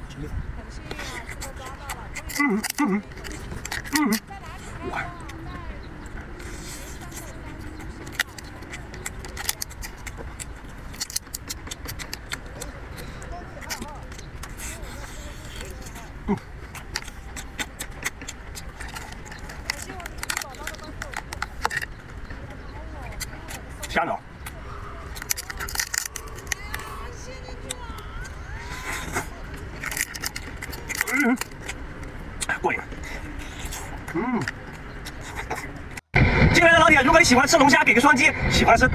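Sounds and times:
chewing: 0:00.9 - 0:36.1
low rumble: 0:35.9 - 0:38.9.

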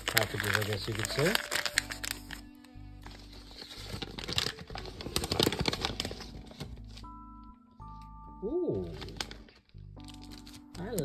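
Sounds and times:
paper packaging rustling: 0:00.0 - 0:07.2, 0:08.8 - 0:11.0
soft background music: 0:00.0 - 0:11.0.

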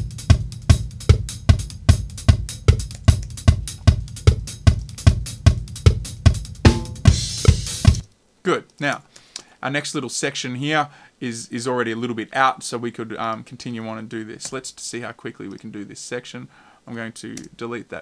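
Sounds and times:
drum kit beat: 0:00.0 - 0:08.1.

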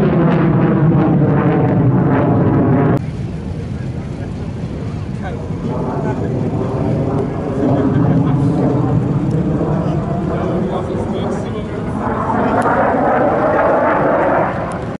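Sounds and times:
jet engine roar: 0:00.0 - 0:15.0
onlookers' voices: 0:03.1 - 0:14.7.

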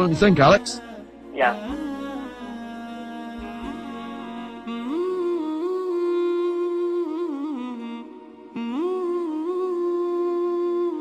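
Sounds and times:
person humming a melody: 0:00.8 - 0:11.0.

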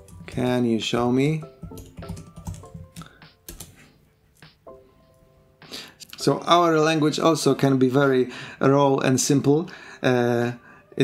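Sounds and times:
computer keyboard typing: 0:00.0 - 0:00.8, 0:01.6 - 0:03.8.

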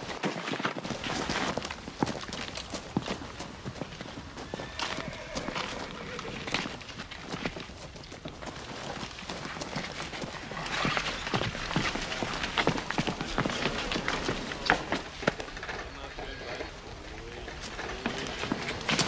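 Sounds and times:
footsteps hurrying on rough ground: 0:00.0 - 0:19.0.

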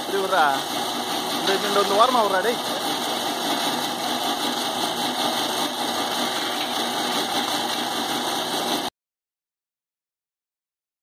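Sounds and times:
stripping machine running: 0:00.0 - 0:08.9.

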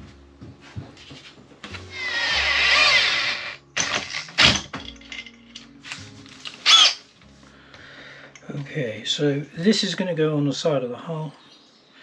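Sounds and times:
cordless drill running: 0:01.9 - 0:03.6, 0:06.6 - 0:07.0.

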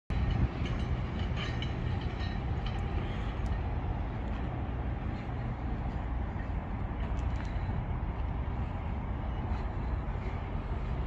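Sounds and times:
low background rumble: 0:00.1 - 0:11.0.

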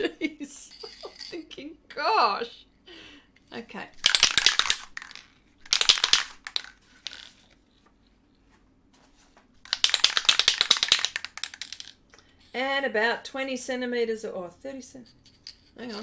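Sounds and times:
spray can mixing ball rattling: 0:04.0 - 0:07.3, 0:09.6 - 0:11.9.

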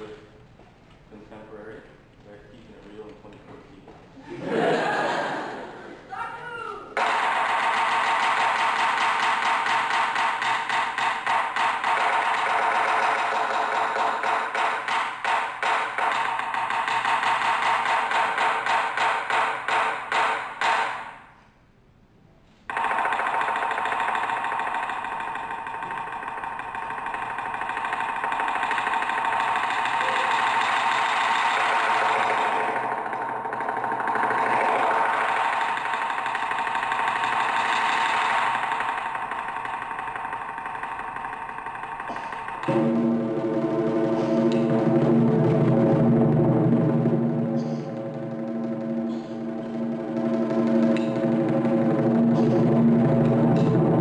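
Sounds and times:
drum roll: 0:04.3 - 0:05.8, 0:07.0 - 0:21.3, 0:22.7 - 0:54.0
taiko drum strokes: 0:07.0 - 0:21.2, 0:22.7 - 0:54.0.

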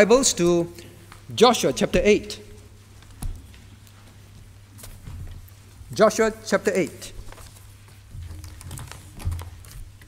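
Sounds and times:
book pages turning: 0:07.1 - 0:10.0.

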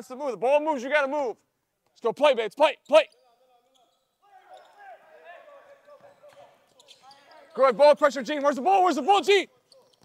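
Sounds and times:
basketball players calling out: 0:02.0 - 0:10.0.

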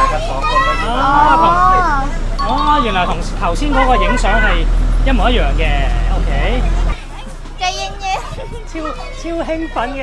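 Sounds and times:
children calling out: 0:00.0 - 0:04.7, 0:06.8 - 0:10.0.

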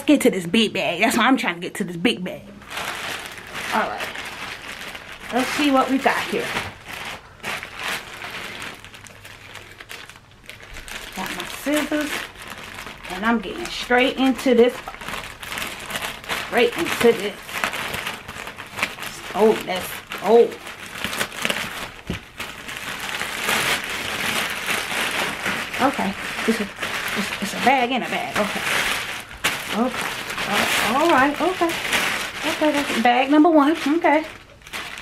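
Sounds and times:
plastic bag rustling: 0:02.3 - 0:35.0
plastic mailer crinkling: 0:02.6 - 0:35.0.

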